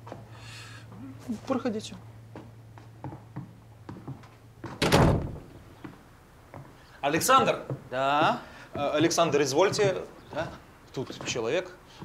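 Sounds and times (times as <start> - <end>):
wooden door shutting: 4.6 - 5.5.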